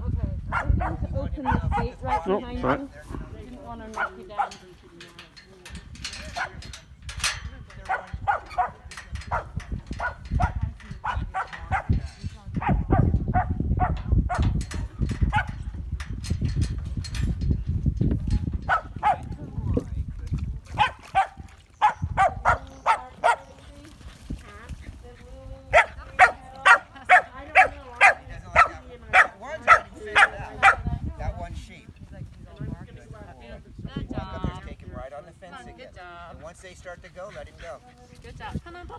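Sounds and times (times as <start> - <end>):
dog barking: 0.5 - 2.8, 4.0 - 4.6, 7.9 - 11.9, 12.6 - 14.4, 15.3 - 15.6, 18.7 - 19.2, 20.8 - 23.5, 25.7 - 30.9.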